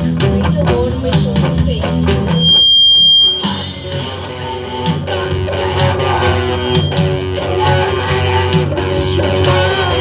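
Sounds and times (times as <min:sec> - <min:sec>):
electric guitar: 0:00.0 - 0:10.0
live rock band playing: 0:00.0 - 0:10.0
high-pitched feedback squeal: 0:02.3 - 0:04.3, 0:06.2 - 0:07.3.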